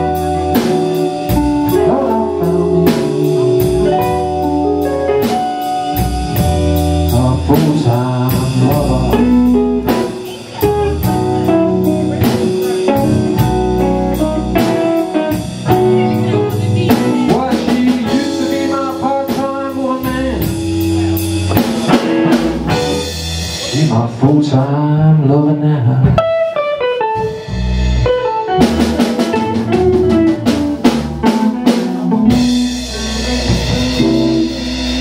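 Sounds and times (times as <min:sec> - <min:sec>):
drum kit with cymbal beat: 0:00.0 - 0:24.2, 0:26.1 - 0:35.0
bass guitar: 0:00.0 - 0:35.0
electric guitars: 0:00.0 - 0:35.0.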